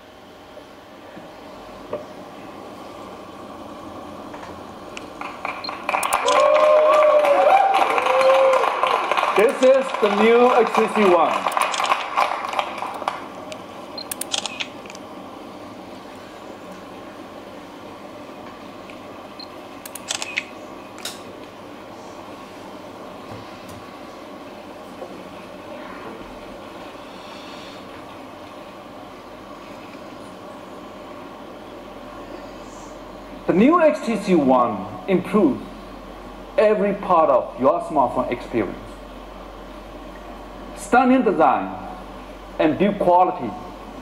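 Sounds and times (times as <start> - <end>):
steady hall hum: 0.0 - 44.0
camera shutters clicking: 6.0 - 6.5, 11.5 - 12.3, 14.1 - 15.0, 19.8 - 21.2.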